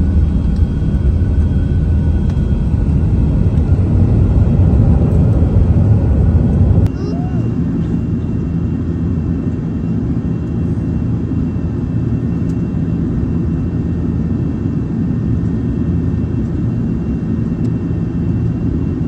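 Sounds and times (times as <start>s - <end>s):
jet engine roar in cabin: 0.0s - 19.0s.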